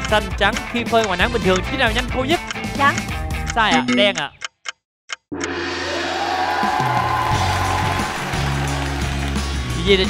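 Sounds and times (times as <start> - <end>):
countdown timer ticking: 0.0 - 6.2.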